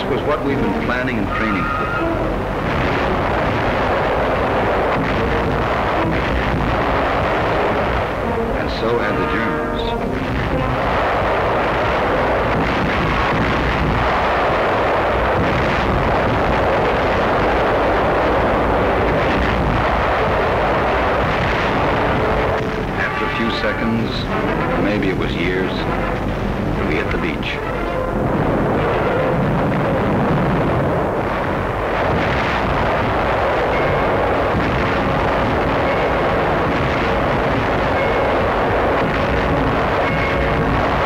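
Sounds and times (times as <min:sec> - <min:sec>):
artillery fire and explosions: 0:00.0 - 0:41.0.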